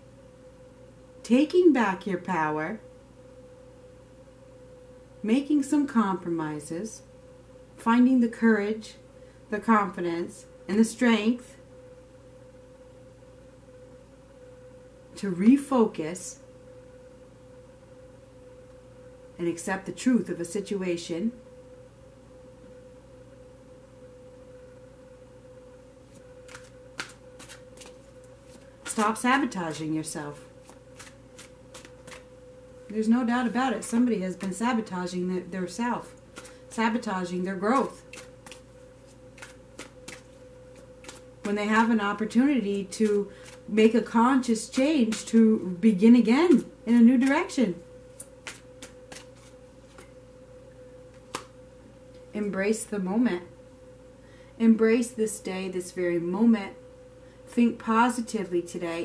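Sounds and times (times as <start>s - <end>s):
faint steady tone: 0.0s - 30.6s, 32.2s - 39.3s, 49.5s - 59.0s
faint steady hum: 0.0s - 59.0s
cards shuffling clicks and snaps: 26.1s - 29.2s, 30.6s - 32.3s, 36.3s - 36.6s, 37.8s - 41.3s, 48.2s - 50.1s, 51.1s - 51.6s.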